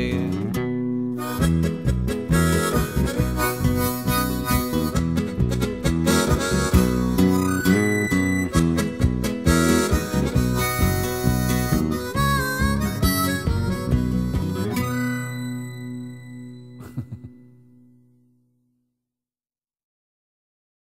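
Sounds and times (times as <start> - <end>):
harmonica melody: 0.0 - 17.3
strummed acoustic guitar: 0.0 - 17.5.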